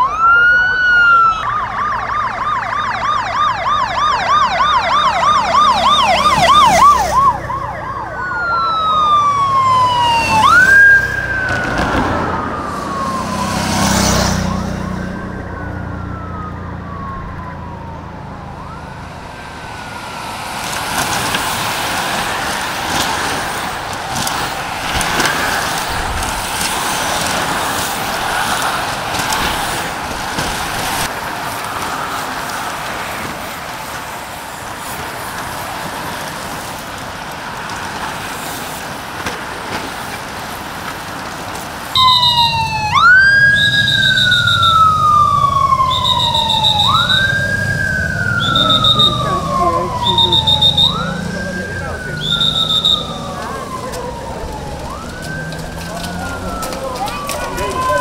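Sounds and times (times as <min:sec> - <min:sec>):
repeating high siren tone: 0:00.0 - 0:21.4, 0:41.9 - 0:58.0
wailing siren: 0:00.0 - 0:58.0.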